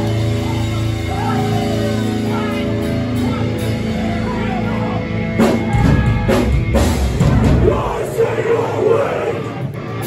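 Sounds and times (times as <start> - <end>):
deep bass: 0.0 - 10.0
distorted guitars: 0.0 - 10.0
hardcore band playing live: 0.0 - 10.0
heavy drum hits: 5.5 - 8.2.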